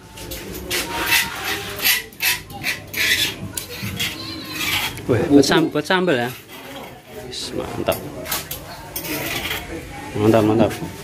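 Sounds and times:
rustling and rubbing: 0.1s - 11.0s.

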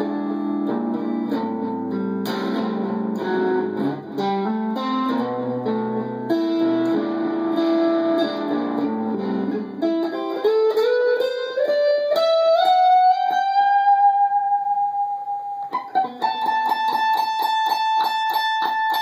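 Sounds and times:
electric guitar single notes: 0.0s - 19.0s.

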